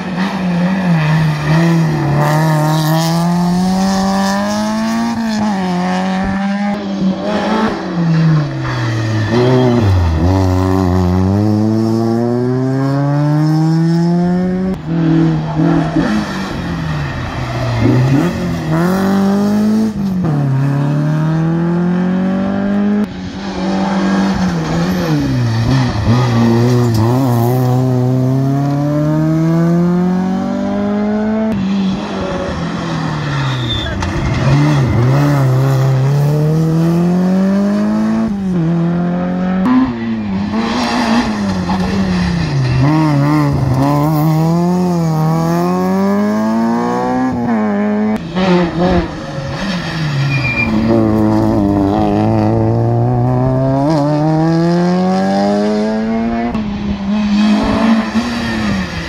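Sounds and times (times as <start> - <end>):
rally car engines revving: 0.0 - 59.0.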